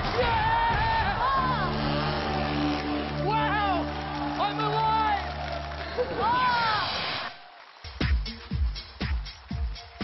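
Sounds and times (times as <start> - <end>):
electronic dance music: 6.6 - 10.0.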